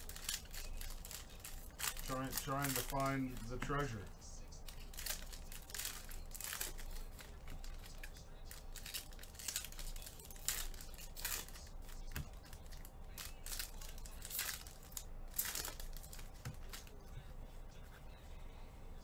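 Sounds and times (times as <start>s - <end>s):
foil wrappers crinkling and tearing: 0.0s - 17.0s
cards rustling: 0.0s - 18.3s.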